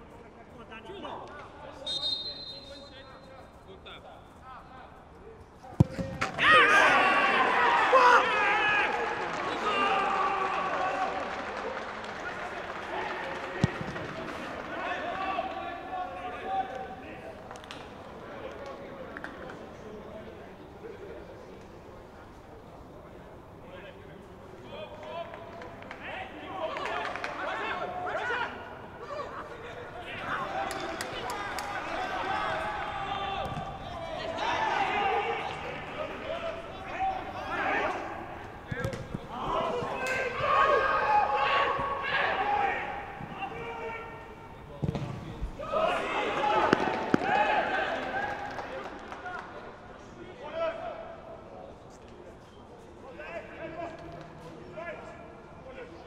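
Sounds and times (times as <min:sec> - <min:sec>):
football being kicked: 0:05.8 - 0:06.4, 0:38.7 - 0:40.0, 0:44.8 - 0:45.2
players shouting: 0:05.8 - 0:17.3, 0:26.0 - 0:48.9.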